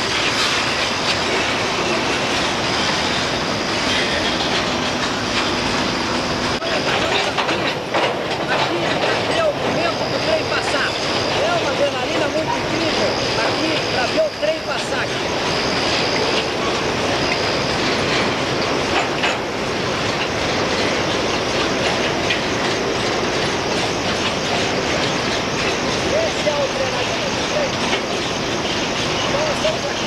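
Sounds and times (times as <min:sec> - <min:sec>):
freight train wheels rattling on rails: 0:00.0 - 0:30.0
high wheel squeal: 0:00.0 - 0:30.0.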